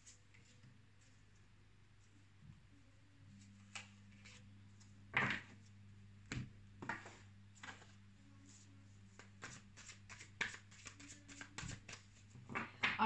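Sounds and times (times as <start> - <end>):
cards tapping and flicking on table: 5.1 - 5.6, 6.3 - 7.9, 9.2 - 13.0.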